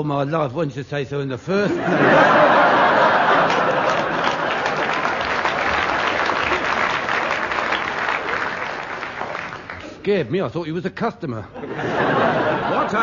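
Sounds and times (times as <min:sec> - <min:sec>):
audience applauding: 0:02.2 - 0:10.0.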